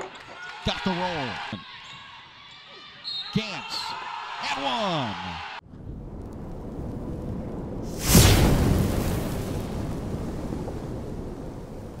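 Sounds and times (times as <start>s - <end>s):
whooshing boom: 5.8s - 11.7s.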